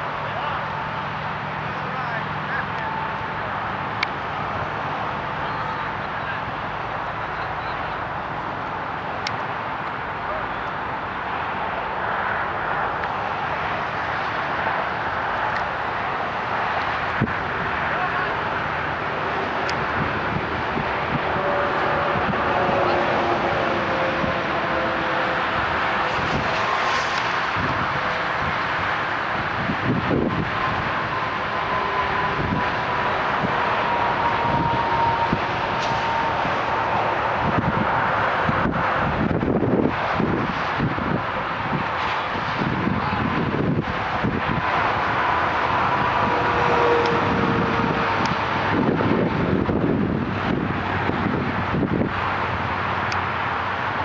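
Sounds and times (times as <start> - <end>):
faint voices: 0.0 - 39.4, 40.1 - 49.1
distant engine drone: 0.0 - 54.0
steady rushing noise: 0.0 - 54.0.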